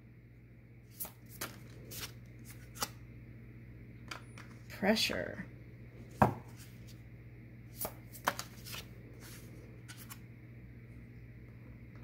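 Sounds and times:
cards tapping and sliding: 0.9s - 3.0s, 7.7s - 10.2s.

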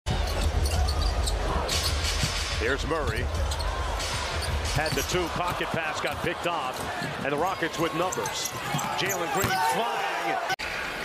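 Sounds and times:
crowd noise: 0.1s - 11.0s.

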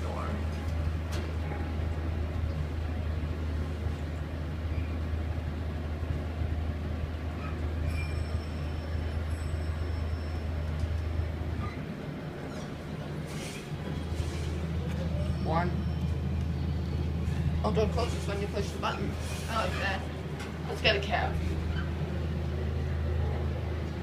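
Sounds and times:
elevator ride hum: 0.0s - 24.0s
elevator doors opening: 7.4s - 16.6s.

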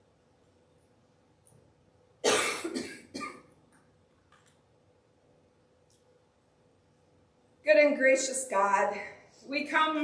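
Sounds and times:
woman coughing: 2.2s - 3.4s.

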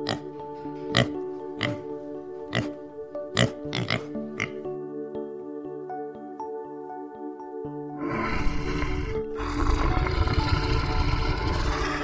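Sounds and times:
background music: 0.0s - 12.0s
pigs oinking: 0.9s - 1.9s, 2.5s - 2.8s, 3.4s - 4.6s, 8.0s - 12.0s.

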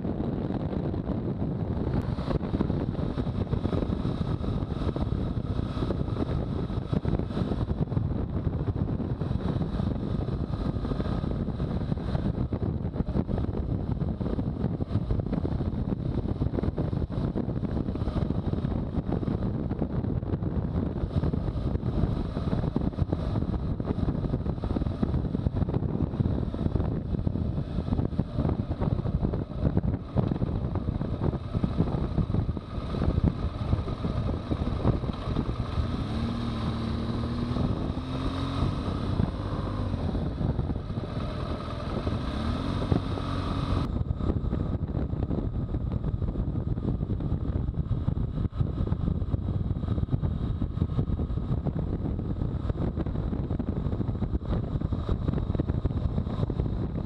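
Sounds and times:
motorcycle engine running: 0.0s - 57.0s
wind buffeting microphone: 0.0s - 57.0s.

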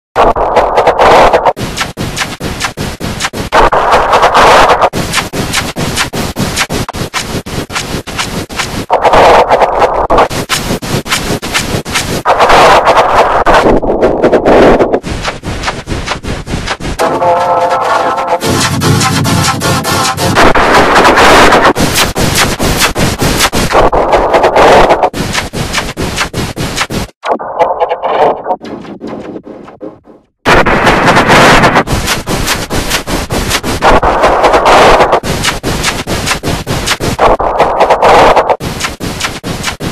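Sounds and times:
heavily distorted clipped noise: 0.2s - 39.9s.

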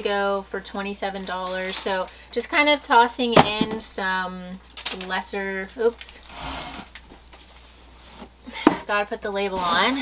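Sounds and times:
handling packing materials: 1.2s - 2.1s.

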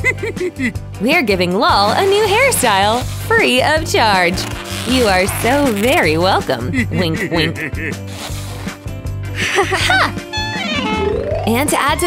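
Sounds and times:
short rasping sounds: 1.9s - 6.1s, 8.0s - 8.8s
background music with low beat: 4.5s - 12.0s.

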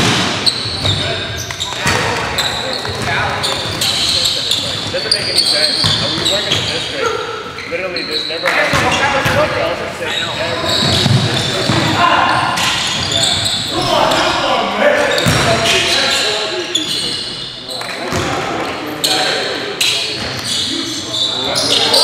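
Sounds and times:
players calling out: 0.4s - 22.0s
basketball bouncing on hardwood: 15.2s - 15.5s.

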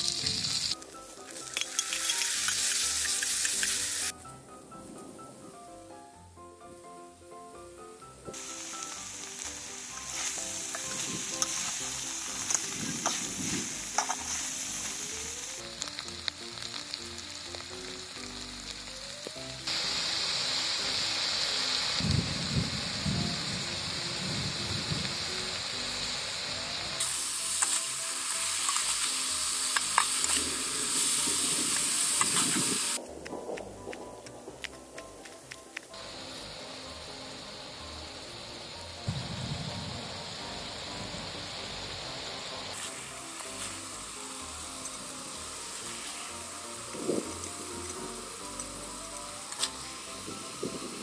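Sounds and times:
food sizzling in hot oil: 0.0s - 4.2s, 8.3s - 33.0s, 33.6s - 51.0s
faint background music: 0.0s - 22.3s, 22.9s - 51.0s
oil popping: 27.0s - 35.9s.

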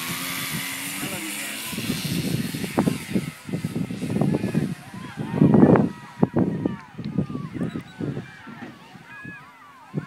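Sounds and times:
model airplane motor running: 0.0s - 8.2s.

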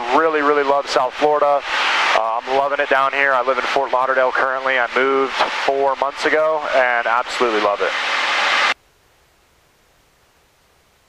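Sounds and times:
aircraft cabin rushing hiss: 5.2s - 6.0s.

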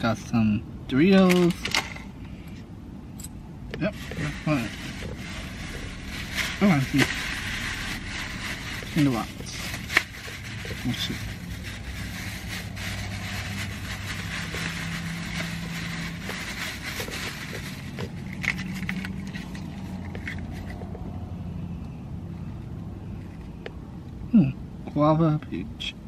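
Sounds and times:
plastic bag rustling: 3.8s - 20.9s
car engine idling: 3.9s - 23.8s.

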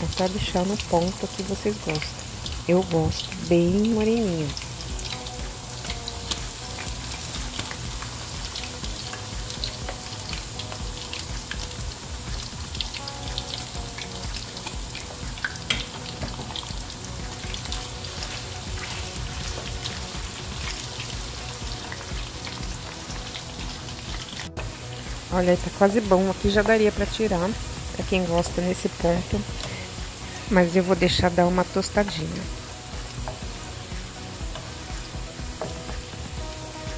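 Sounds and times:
oil popping and crackling: 0.0s - 30.4s
potato slices sizzling in oil: 0.0s - 36.9s.

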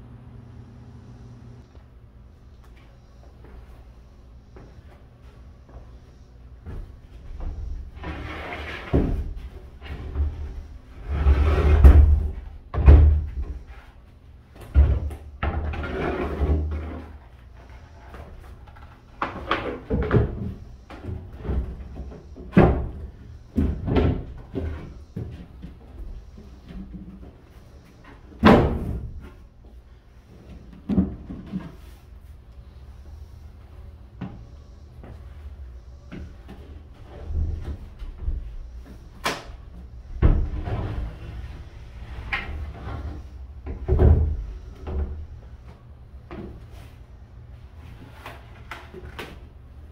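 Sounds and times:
floor panels scraping: 7.1s - 14.0s, 40.0s - 45.2s.

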